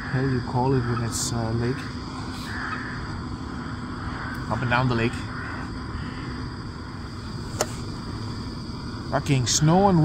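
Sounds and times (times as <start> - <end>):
gas stove hissing: 0.0 - 10.0.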